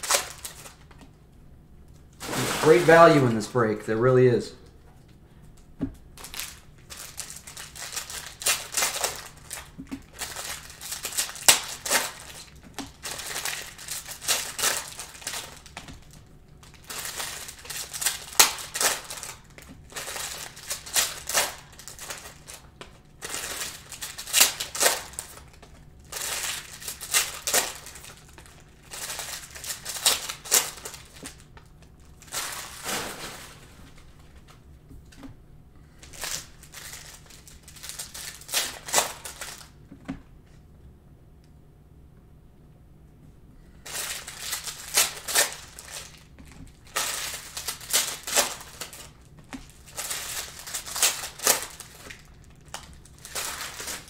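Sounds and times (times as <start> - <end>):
pack wrappers crinkling: 0.0 - 1.0, 1.9 - 3.6, 6.2 - 34.6, 36.0 - 39.8, 43.8 - 54.0.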